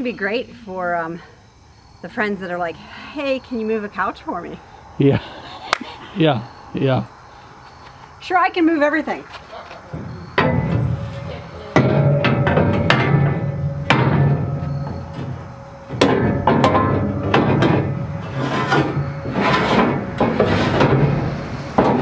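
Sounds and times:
metal scraping on metal: 0:09.4 - 0:22.0
metal ramps clanking: 0:09.9 - 0:22.0.

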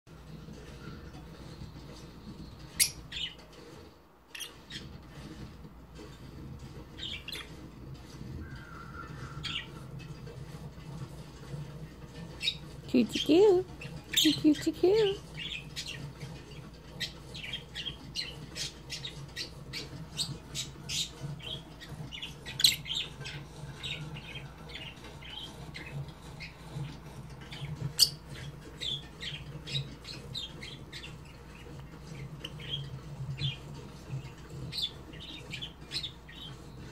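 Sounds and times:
parrot chirping: 0:01.0 - 0:03.4, 0:04.3 - 0:05.2, 0:06.8 - 0:07.7, 0:12.1 - 0:36.8.

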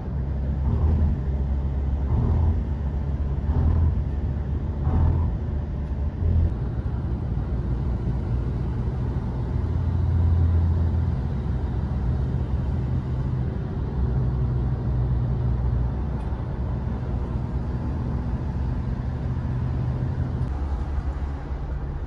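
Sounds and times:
vehicle road and engine noise: 0:00.0 - 0:22.0.

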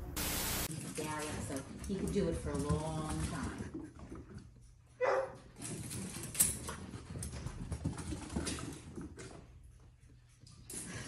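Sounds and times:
running paws on floor: 0:00.6 - 0:11.0.

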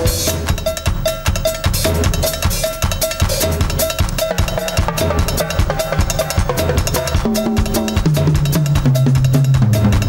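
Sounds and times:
bass drum beats: 0:00.0 - 0:10.0
cowbell struck in steady pattern: 0:00.0 - 0:10.0.

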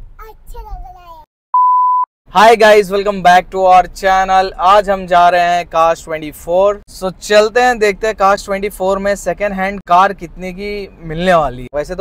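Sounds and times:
steady electronic beep: 0:01.6 - 0:02.1
man speaking: 0:02.3 - 0:12.0.

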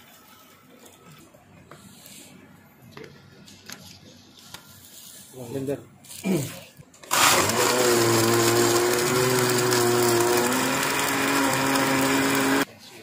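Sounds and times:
blender running: 0:07.0 - 0:12.7.

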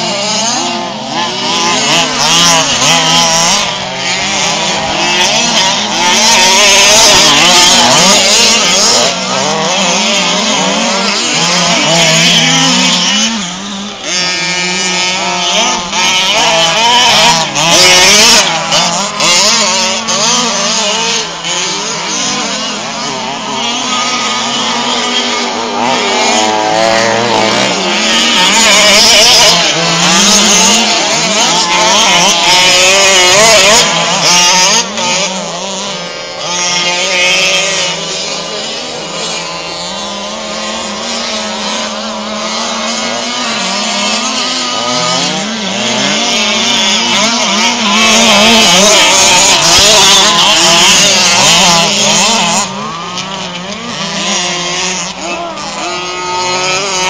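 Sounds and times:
rc truck engines revving: 0:00.0 - 0:57.0.

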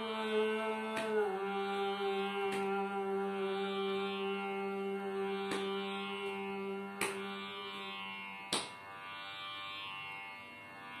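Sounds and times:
person singing: 0:00.0 - 0:08.3
tanpura drone plucks: 0:00.0 - 0:11.0.

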